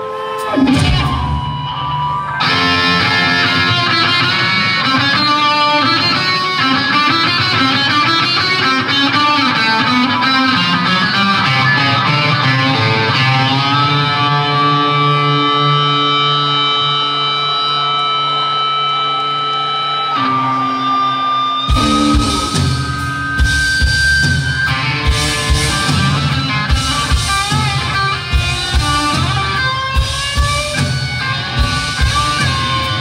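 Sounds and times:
electric guitar through effects: 0:00.0 - 0:33.0
live rock band music: 0:00.0 - 0:33.0.

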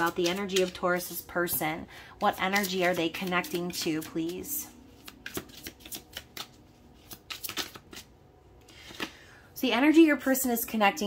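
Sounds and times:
cards being shuffled: 0:00.0 - 0:01.2, 0:02.3 - 0:09.2.

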